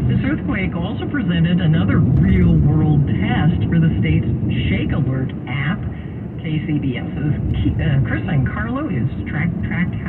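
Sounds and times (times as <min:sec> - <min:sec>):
car road and engine rumble: 0:00.0 - 0:10.0
radio news speech: 0:00.0 - 0:10.0.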